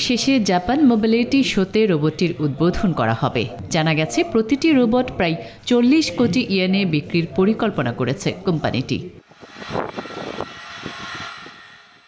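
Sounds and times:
faint high whine: 9.2 - 12.0.

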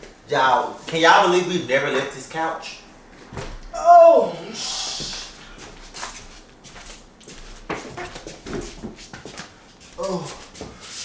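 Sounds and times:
furniture knocks and bumps: 3.2 - 3.7, 7.4 - 9.4
high-pitched vocal sounds: 3.8 - 5.3.

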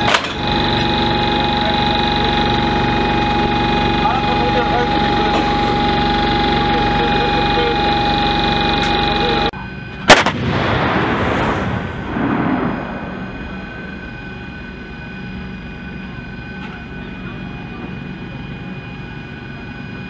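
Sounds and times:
machinery hum with high whine: 0.0 - 20.0
artillery shot: 10.0 - 13.7
rumbling echo: 10.1 - 15.5.

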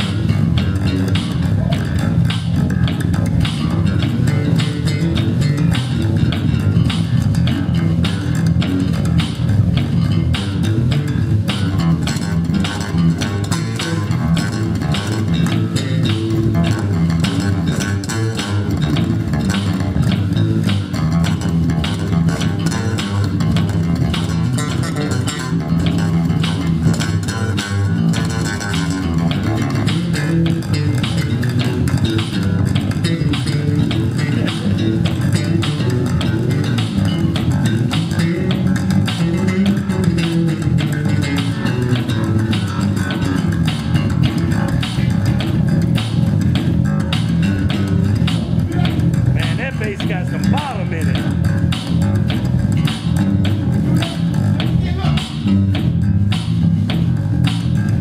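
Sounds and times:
electric bass guitars jamming: 0.0 - 58.0.

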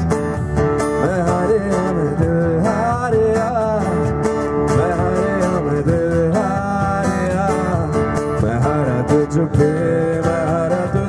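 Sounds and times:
bass guitar: 0.0 - 11.0
cajon: 0.0 - 11.0
man singing: 0.0 - 11.0
strummed acoustic guitar: 0.0 - 11.0.

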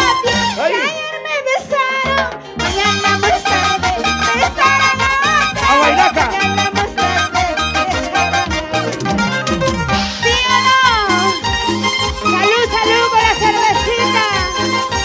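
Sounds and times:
latin dance band music: 0.0 - 15.0.

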